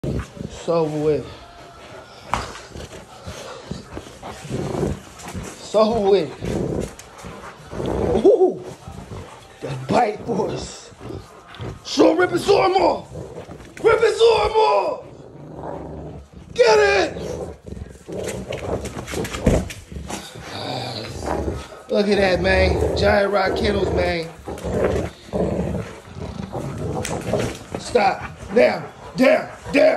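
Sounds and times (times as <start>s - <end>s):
paws scuffling on hard floor: 0.0s - 29.9s
dog tugging bite pillow: 1.8s - 29.9s.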